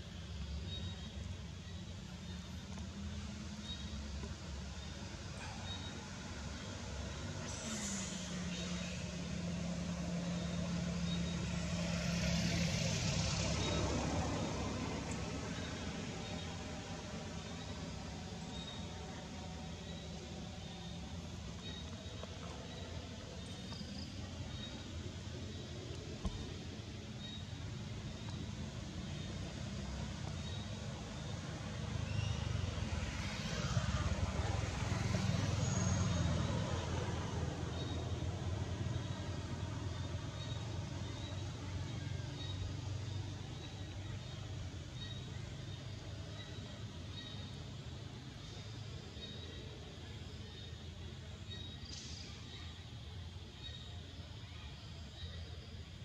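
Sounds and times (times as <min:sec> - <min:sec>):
vehicle engine humming: 0:00.0 - 0:52.2.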